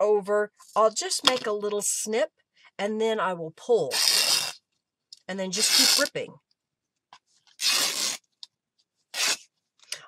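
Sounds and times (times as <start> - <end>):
fabric ripping: 3.9 - 4.6, 5.6 - 6.1, 7.5 - 8.2, 9.1 - 9.5.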